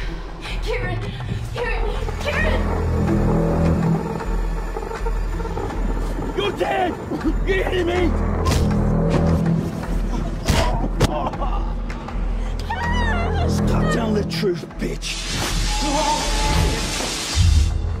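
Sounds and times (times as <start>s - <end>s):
low pulsing bass: 0.0s - 14.3s
dark orchestral score: 0.0s - 18.0s.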